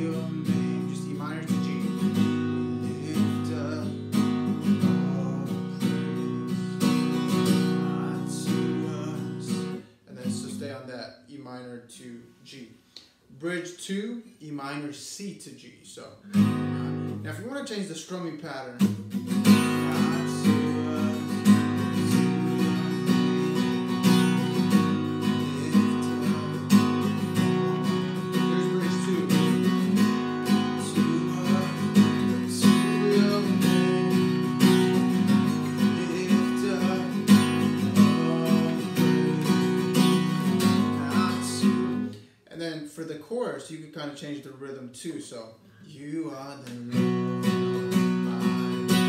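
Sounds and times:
acoustic guitar strumming: 0:00.0 - 0:10.6, 0:16.3 - 0:17.5, 0:18.8 - 0:42.3, 0:46.6 - 0:49.0.

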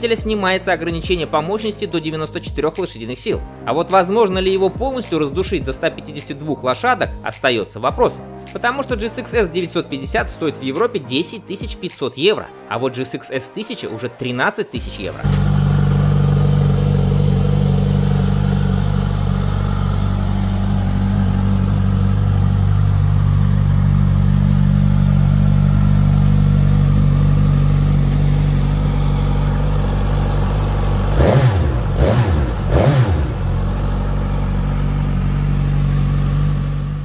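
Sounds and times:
motorcycle engine idling and revving: 0:15.2 - 0:37.0.

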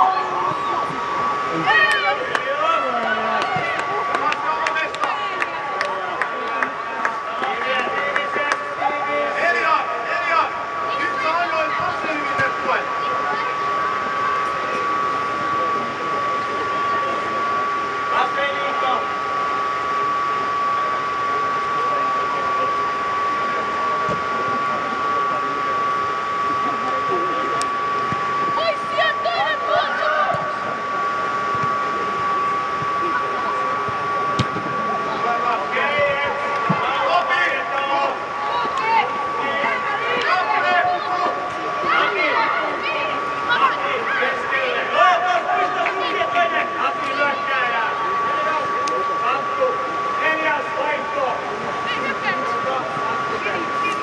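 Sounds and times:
blower machinery humming: 0:00.0 - 0:54.0.

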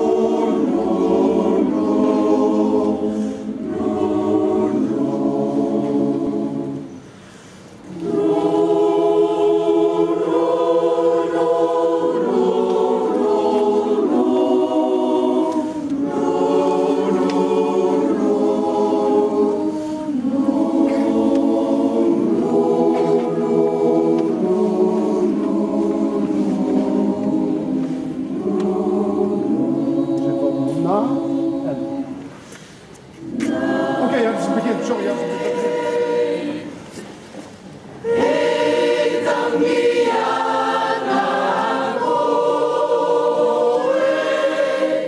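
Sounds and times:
choir singing held chords: 0:00.0 - 0:45.0.

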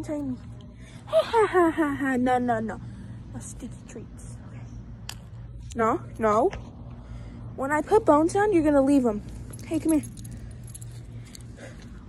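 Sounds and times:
light metallic jingling: 0:08.9 - 0:12.0.

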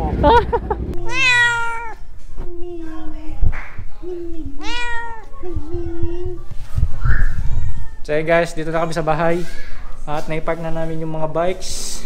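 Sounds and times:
cat meowing: 0:01.0 - 0:02.0, 0:04.4 - 0:06.0, 0:07.3 - 0:08.0.

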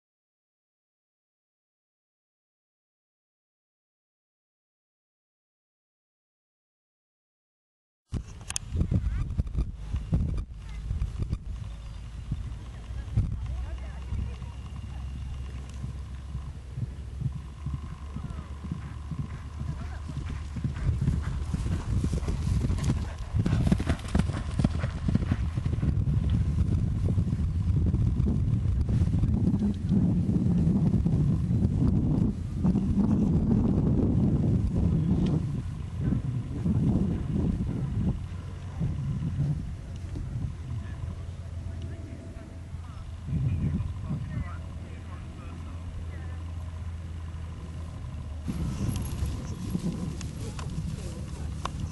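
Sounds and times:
horse hoofbeats on turf: 0:08.9 - 0:27.4, 0:48.5 - 0:51.9.

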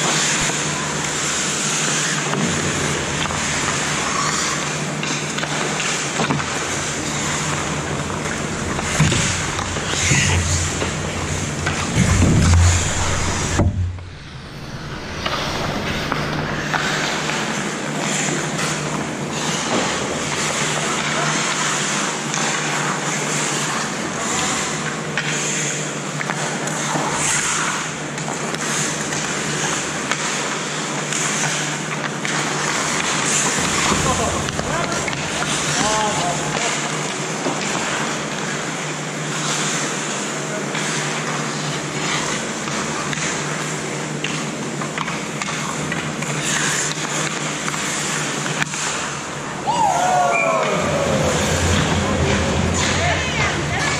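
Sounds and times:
hockey sticks and puck clacking: 0:00.0 - 0:13.3, 0:15.2 - 0:53.9
skates scraping on ice: 0:00.0 - 0:53.9
players calling out: 0:49.5 - 0:53.9.

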